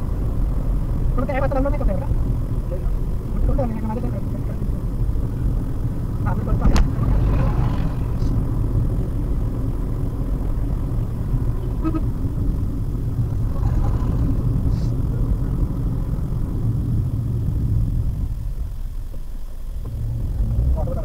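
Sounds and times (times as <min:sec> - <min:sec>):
car road and engine rumble: 0:00.0 - 0:21.0.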